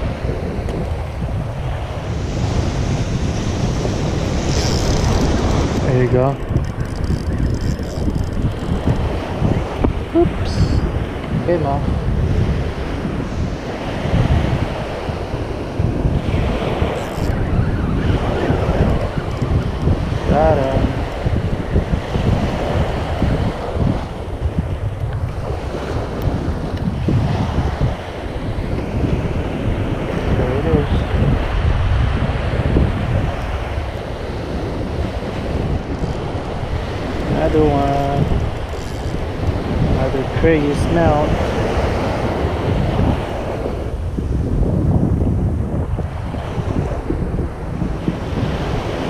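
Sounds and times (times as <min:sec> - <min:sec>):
small waves breaking on sand: 0:00.0 - 0:44.8, 0:45.8 - 0:49.0
wind buffeting the microphone: 0:00.0 - 0:49.0.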